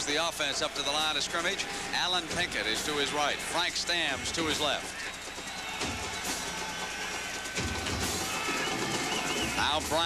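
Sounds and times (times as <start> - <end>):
music playing in stands: 0.0 - 10.0
stadium crowd noise: 0.0 - 10.0.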